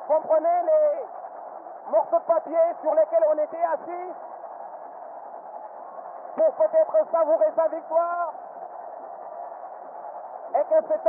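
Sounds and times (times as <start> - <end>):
stadium crowd noise over radio: 0.0 - 11.0.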